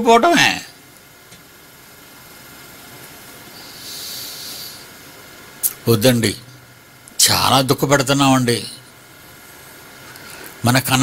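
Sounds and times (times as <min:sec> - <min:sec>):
microphone hiss: 0:00.0 - 0:11.0
breath through the nose: 0:03.5 - 0:04.9.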